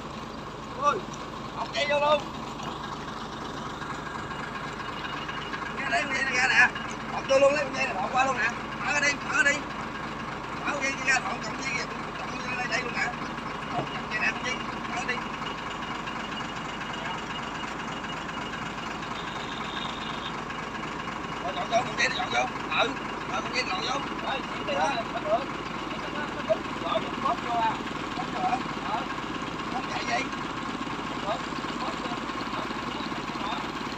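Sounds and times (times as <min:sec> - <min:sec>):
truck engine idling: 0:00.0 - 0:33.9.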